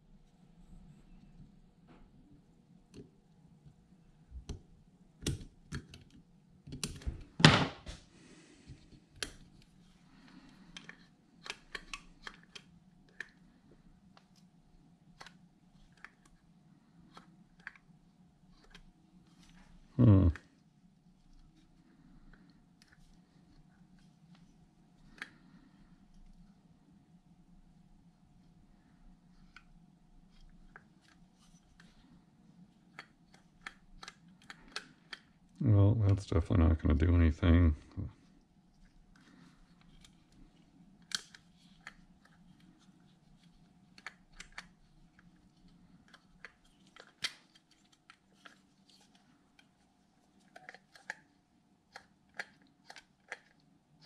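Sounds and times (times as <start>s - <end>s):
faint steady hum: 0.0s - 54.0s.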